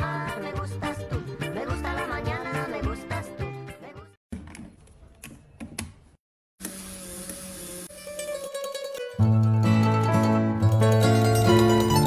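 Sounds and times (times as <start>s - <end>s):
music: 0.0s - 4.2s, 8.0s - 12.0s.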